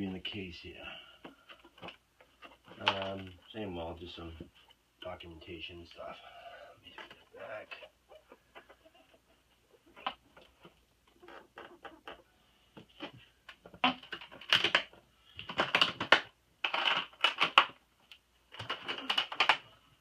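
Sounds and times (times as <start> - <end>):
crinkling bursts: 1.2 - 3.8, 12.8 - 20.0
paper and plastic rustling: 1.3 - 3.6.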